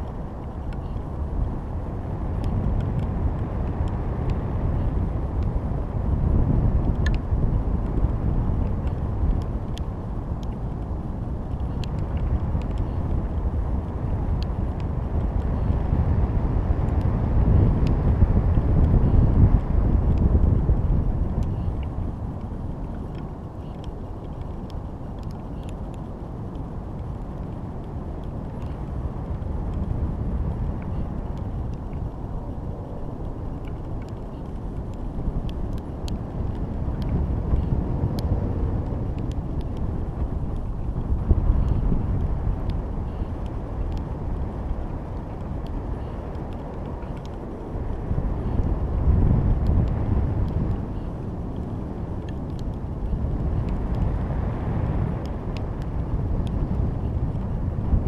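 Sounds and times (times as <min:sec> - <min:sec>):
faint ticks: 0:00.0 - 0:01.1, 0:02.2 - 0:05.5, 0:06.6 - 0:15.9, 0:17.8 - 0:58.0
wind buffeting microphone: 0:00.0 - 0:58.0.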